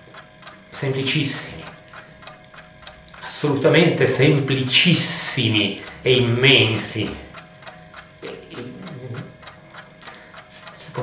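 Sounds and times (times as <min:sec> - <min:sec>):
quick ticking: 0:00.0 - 0:11.0
low murmured voice: 0:08.2 - 0:09.3.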